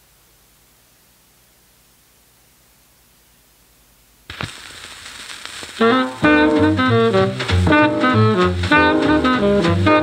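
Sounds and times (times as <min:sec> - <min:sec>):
record surface crackle: 0:04.2 - 0:10.0
stylus thump on record: 0:04.3 - 0:04.6
jazz quartet with saxophone: 0:05.8 - 0:10.0.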